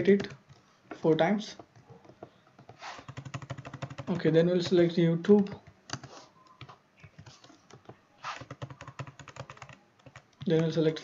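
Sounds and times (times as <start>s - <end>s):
computer keyboard typing: 0.0s - 0.6s, 1.5s - 11.0s.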